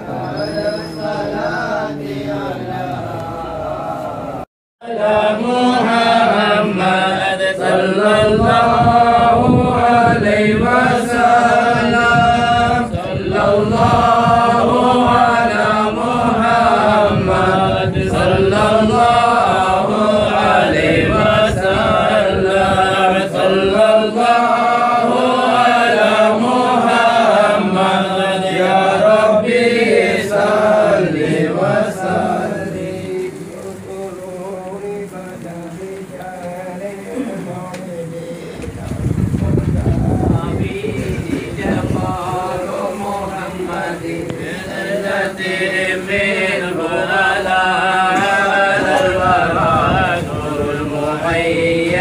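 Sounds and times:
men chanting a hymn in unison: 0:00.0 - 0:52.0.

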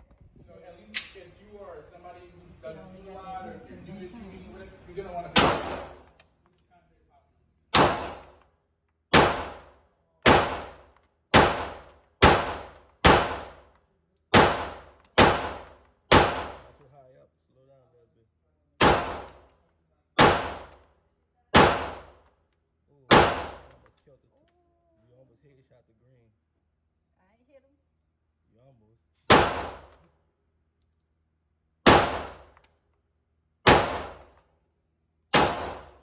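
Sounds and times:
pistol shots indoors: 0:05.3 - 0:06.2, 0:07.7 - 0:16.8, 0:18.8 - 0:19.6, 0:20.2 - 0:20.9, 0:23.1 - 0:24.0, 0:29.2 - 0:30.1, 0:31.7 - 0:32.8, 0:33.5 - 0:34.5, 0:35.3 - 0:36.0.

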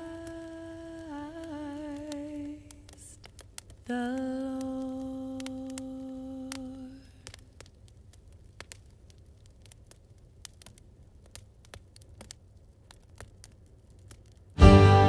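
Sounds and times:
logs crackling in fireplace: 0:00.0 - 0:15.0.

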